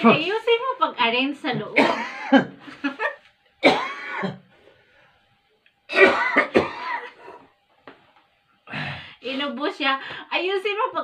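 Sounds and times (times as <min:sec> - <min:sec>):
man coughing: 0:01.8 - 0:02.6, 0:03.6 - 0:04.5, 0:05.9 - 0:07.4.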